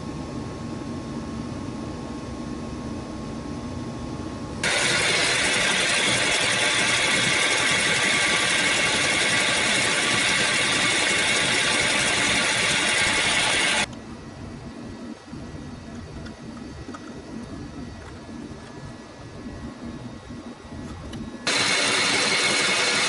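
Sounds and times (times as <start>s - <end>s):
metal lathe running: 4.6s - 13.9s, 21.4s - 23.0s.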